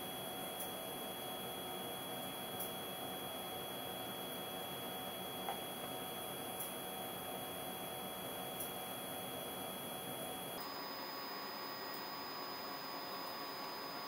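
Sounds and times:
faint high whine: 8.6s - 14.0s.

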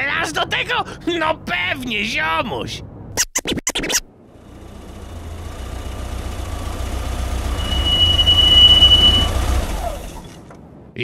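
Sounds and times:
car engine and road rumble: 4.1s - 10.9s
high brake squeal: 7.0s - 10.4s.

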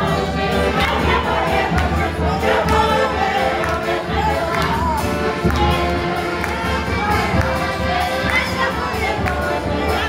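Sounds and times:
folk band playing lively tune: 0.0s - 10.0s
people singing: 0.0s - 10.0s
people clapping along: 0.1s - 10.0s.

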